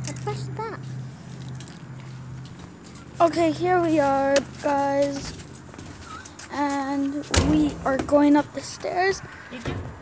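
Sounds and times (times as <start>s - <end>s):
footsteps on paving: 0.7s - 8.4s.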